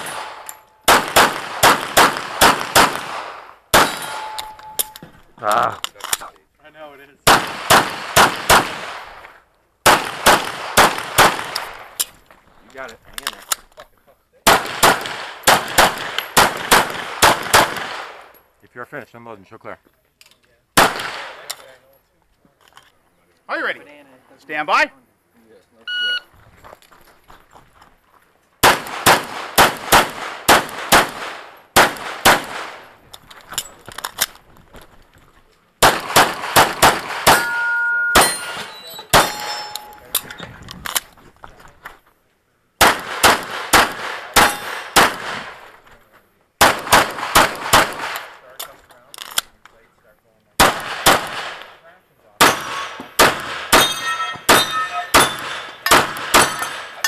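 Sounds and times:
pistol shots: 0:00.0 - 0:05.0, 0:07.2 - 0:09.2, 0:09.8 - 0:12.0, 0:14.4 - 0:18.3, 0:20.8 - 0:21.5, 0:28.6 - 0:33.0, 0:35.8 - 0:40.2, 0:42.8 - 0:45.6, 0:46.6 - 0:48.4, 0:50.6 - 0:51.8, 0:52.4 - 0:57.0
steel targets ringing: 0:03.8 - 0:05.1, 0:37.3 - 0:40.1, 0:53.8 - 0:57.0
shot timer beep: 0:25.9 - 0:26.3.

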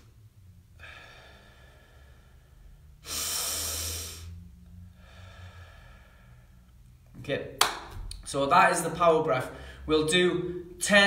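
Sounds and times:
faint breathing: 0:00.7 - 0:07.0, 0:09.4 - 0:09.9
man exhaling forcefully: 0:03.0 - 0:04.4.

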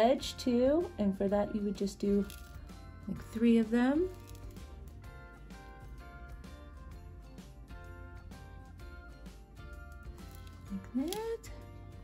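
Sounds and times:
quiet music of held notes: 0:00.0 - 0:12.0.

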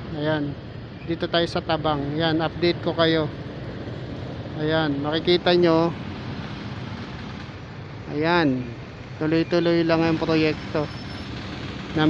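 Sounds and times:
slow road traffic rumble: 0:00.0 - 0:12.0.

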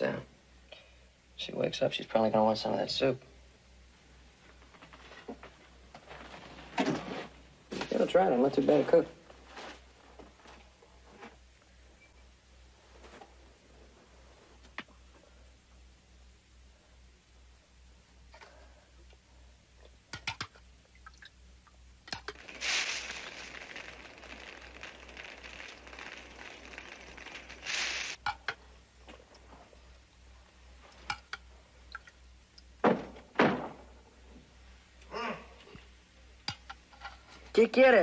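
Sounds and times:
hissing rustle: 0:22.2 - 0:28.2.

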